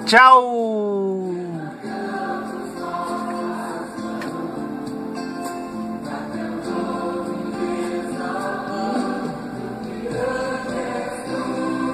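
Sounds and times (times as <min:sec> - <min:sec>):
choir singing: 0:01.1 - 0:11.9.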